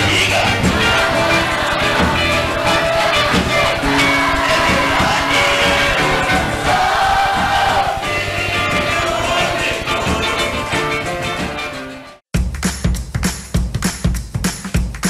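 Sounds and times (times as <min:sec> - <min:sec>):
live samba band and singers: 0:00.0 - 0:11.5.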